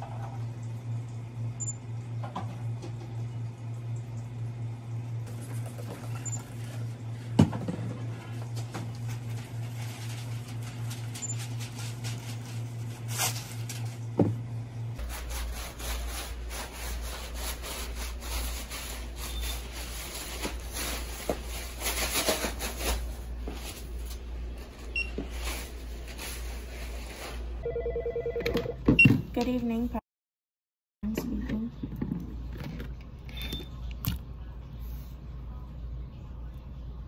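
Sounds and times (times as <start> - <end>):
paper towel rubbing on floor: 15.0 - 24.0, 25.2 - 27.5
low steady hum: 31.0 - 37.0.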